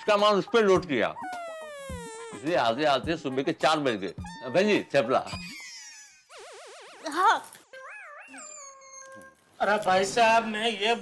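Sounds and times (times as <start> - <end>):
man speaking: 9.6 - 11.0.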